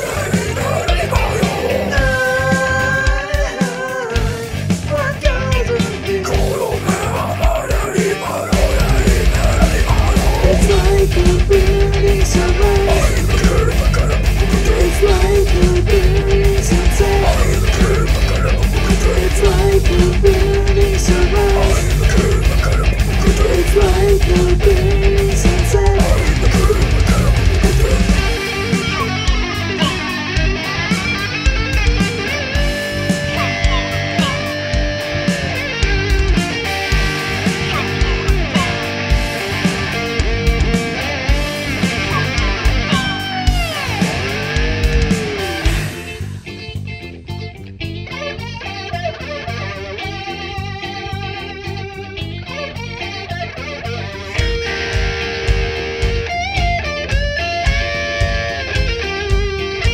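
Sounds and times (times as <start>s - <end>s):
bass and drums: 0.0s - 59.9s
electric guitar: 0.0s - 59.9s
funk metal band playing: 0.0s - 59.9s.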